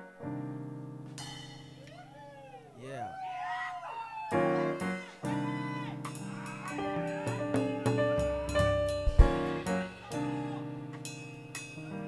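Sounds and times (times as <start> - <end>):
funk jazz band playing: 4.4 - 12.0
loud drum hits: 7.4 - 9.8.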